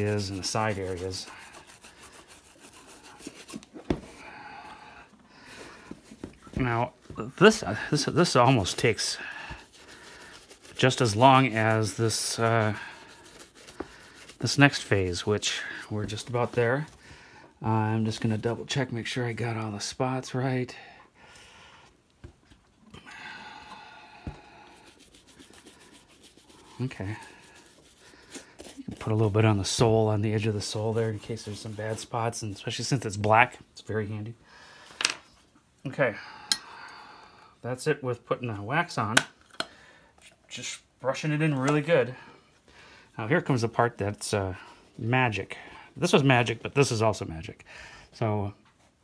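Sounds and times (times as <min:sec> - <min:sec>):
sponge rubbing polish into shoe: 0:00.0 - 0:03.9, 0:07.5 - 0:16.9, 0:24.3 - 0:32.5.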